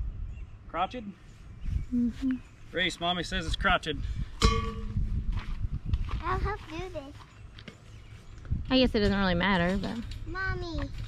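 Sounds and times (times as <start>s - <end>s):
steady low rumble: 3.9s - 6.6s
sharp metallic clank: 4.4s - 5.0s.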